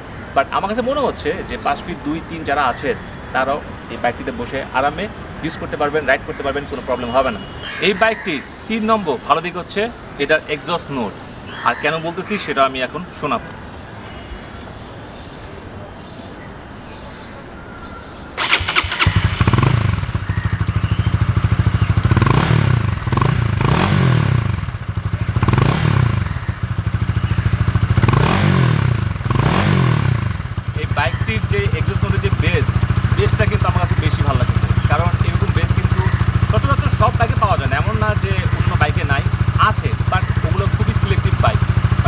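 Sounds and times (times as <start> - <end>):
motorcycle engine idling: 18.4 - 42.0
motorcycle engine revving: 18.4 - 42.0
motorcycle engine starting: 18.4 - 42.0.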